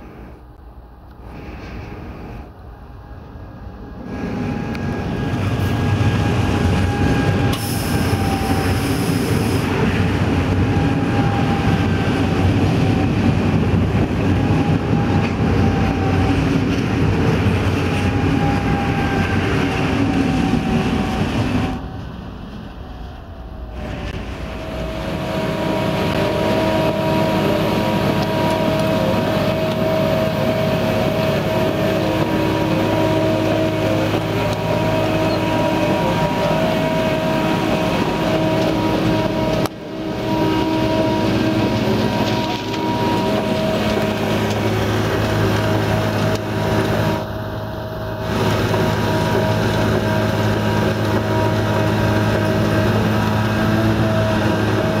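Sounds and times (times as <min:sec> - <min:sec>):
diesel engine running steadily: 0:00.0 - 0:22.8, 0:23.4 - 0:55.0
electric train passing at speed: 0:00.0 - 0:55.0.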